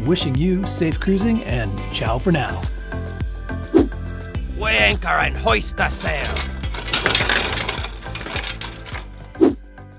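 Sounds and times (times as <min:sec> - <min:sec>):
music: 0:00.0 - 0:09.9
metallic clinks and jingling: 0:05.8 - 0:09.2.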